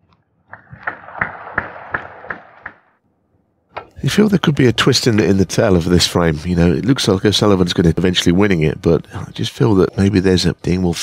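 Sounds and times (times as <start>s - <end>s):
audience applause: 0.6s - 2.8s.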